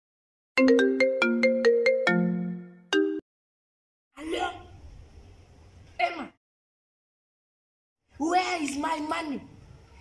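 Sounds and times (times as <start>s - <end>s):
phone ringtone tune: 0.6s - 3.2s.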